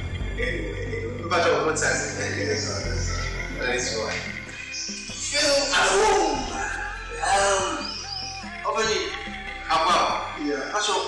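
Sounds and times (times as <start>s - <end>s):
man's voice gliding in pitch: 0.2s - 4.4s.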